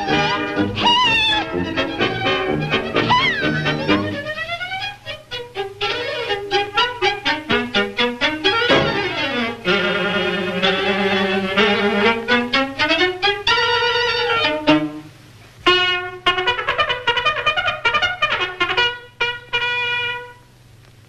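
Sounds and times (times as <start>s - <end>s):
cartoon orchestra music: 0.0s - 15.1s, 15.7s - 20.4s.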